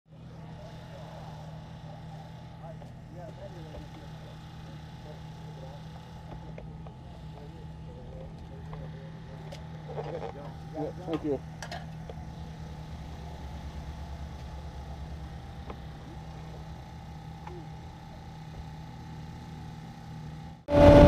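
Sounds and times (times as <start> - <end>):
faint voices chattering: 0.1 - 19.6
engine idling: 0.1 - 21.0.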